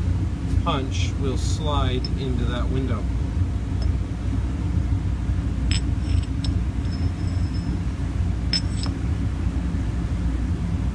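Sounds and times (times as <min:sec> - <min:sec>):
low background rumble: 0:00.0 - 0:10.9.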